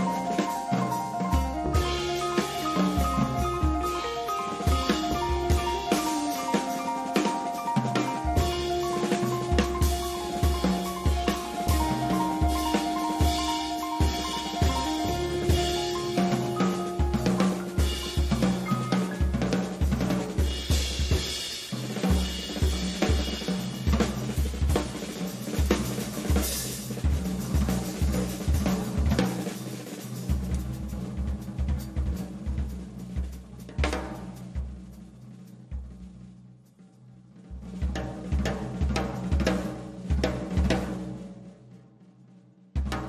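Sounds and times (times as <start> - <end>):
drum kit played busily: 0.0 - 43.0.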